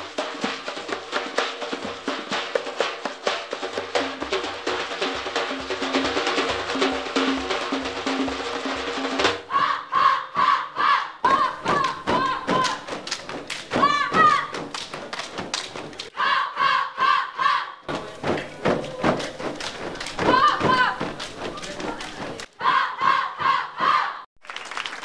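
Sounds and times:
group chanting in unison: 9.4s - 12.9s, 16.1s - 18.0s, 20.2s - 24.3s
hand claps and body slaps: 11.3s - 16.1s, 17.9s - 22.5s.

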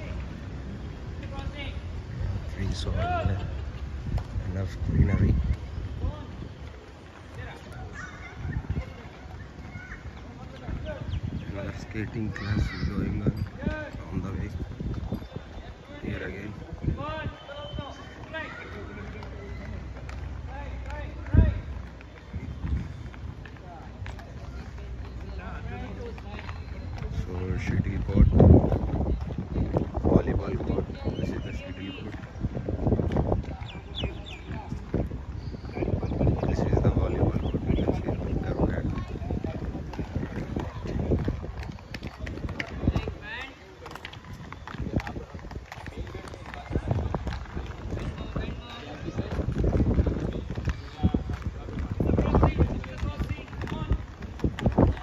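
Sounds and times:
inline skates rolling on concrete: 0.0s - 55.0s
people talking and calling: 0.0s - 55.0s
children's voices: 7.7s - 10.4s, 12.2s - 13.1s.

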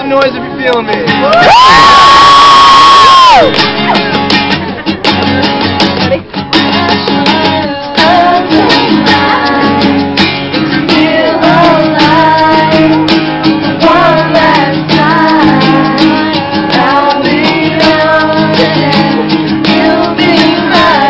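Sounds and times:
acoustic guitars strummed: 0.0s - 21.0s
man singing: 6.6s - 9.9s, 13.8s - 21.0s.

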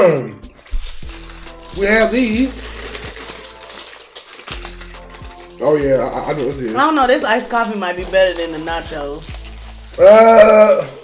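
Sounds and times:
quiet background music with beat: 0.0s - 10.9s
foil wrapper crinkling: 0.5s - 11.0s.

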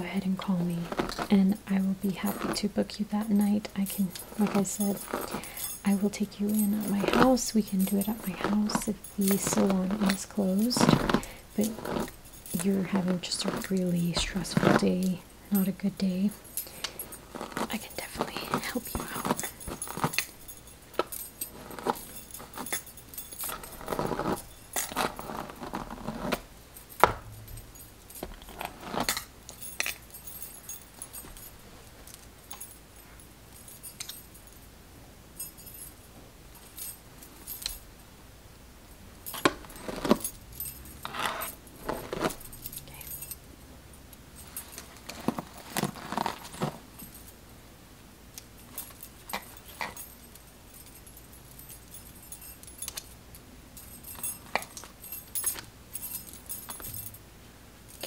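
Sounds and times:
bangles clinking and jangling: 0.0s - 38.2s, 38.8s - 58.0s.

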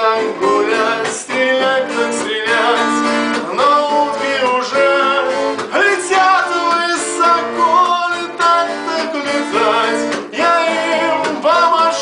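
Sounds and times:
man singing: 0.0s - 12.0s
strummed acoustic guitar: 0.0s - 12.0s.

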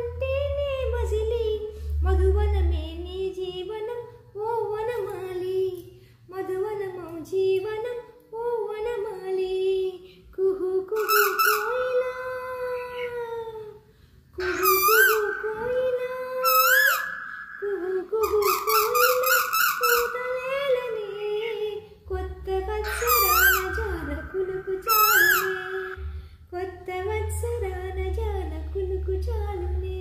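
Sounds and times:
woman singing unaccompanied: 0.0s - 13.8s, 14.4s - 30.0s.

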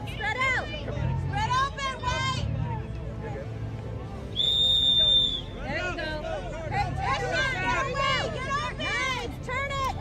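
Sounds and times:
voices on the field: 0.0s - 10.0s
referee's whistle blast: 4.4s - 5.5s.

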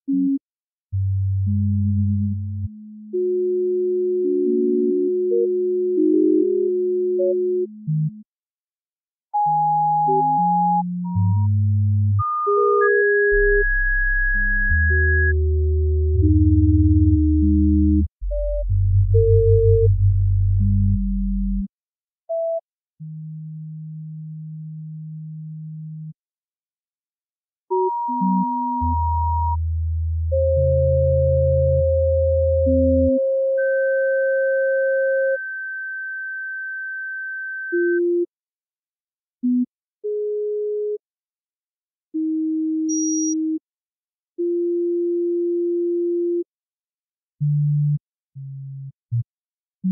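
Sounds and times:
electronic sine-wave tones: 42.9s - 43.6s.

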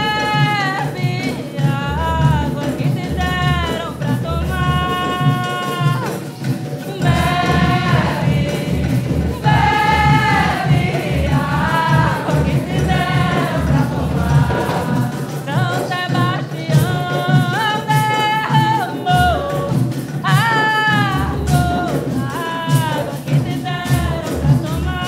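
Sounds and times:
group of voices singing: 0.0s - 25.0s
percussion beat: 0.0s - 25.0s
woman singing: 0.0s - 25.0s.

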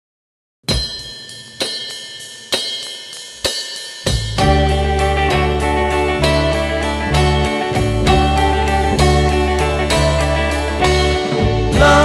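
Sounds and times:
cymbal crashes with kick drum: 0.7s - 4.6s.

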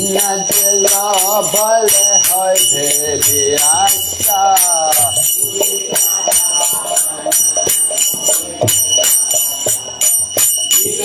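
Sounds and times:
drum: 0.0s - 11.0s
hand cymbals striking: 0.0s - 11.0s
held melodic tone: 0.0s - 11.0s.

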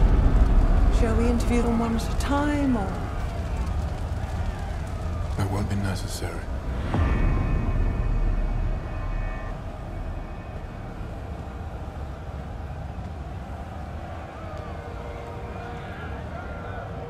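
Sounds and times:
deep low rumble: 0.0s - 13.6s.

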